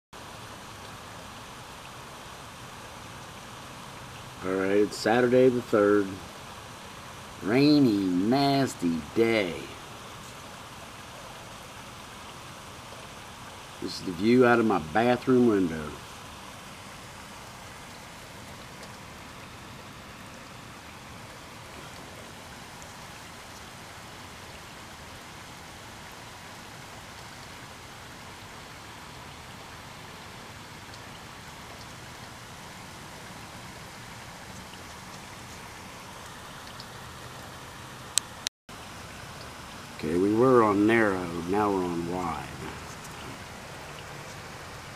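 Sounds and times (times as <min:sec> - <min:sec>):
steady rain falling: 0:00.2 - 0:44.9.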